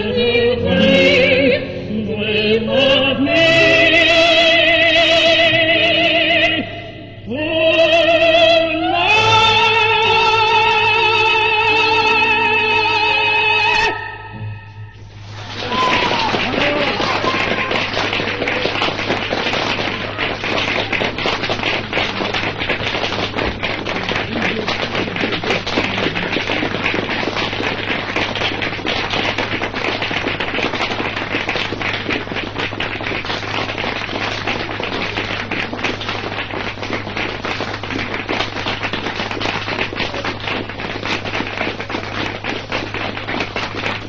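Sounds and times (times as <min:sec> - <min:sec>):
low hum: 0:00.0 - 0:40.7
audience applause: 0:15.3 - 0:44.0.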